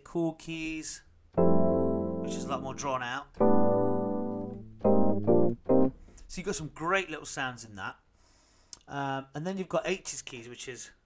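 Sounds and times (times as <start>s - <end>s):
electric piano chords: 1.4s - 6.0s.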